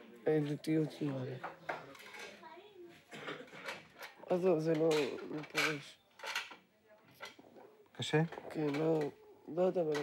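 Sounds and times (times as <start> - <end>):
murmur of busy workroom: 0.0 - 10.0.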